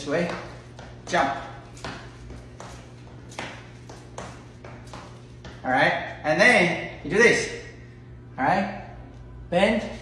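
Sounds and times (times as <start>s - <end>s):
sneakers landing on tile floor: 0.0s - 5.7s
steady low hum: 0.0s - 10.0s.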